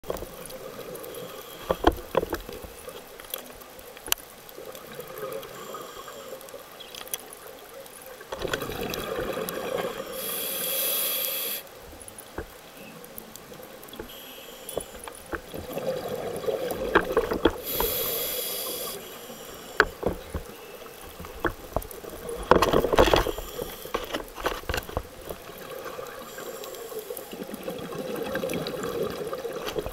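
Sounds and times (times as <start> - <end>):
regulator inhale hiss: 1.1 - 1.9, 5.4 - 6.6, 9.8 - 11.8, 14.0 - 15.1, 17.6 - 21.0, 23.2 - 24.0, 26.2 - 27.3.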